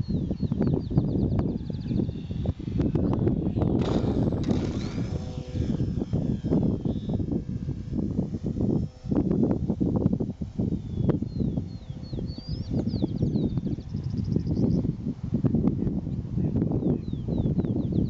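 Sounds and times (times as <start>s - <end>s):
small electric motor whine: 0.0s - 18.0s
wind buffeting microphone: 0.0s - 18.0s
bird chirping: 10.8s - 14.8s.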